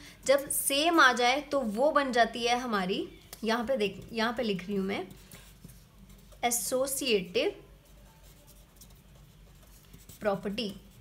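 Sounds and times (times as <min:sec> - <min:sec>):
marker pen writing on paper: 0:03.8 - 0:06.5, 0:07.8 - 0:11.0.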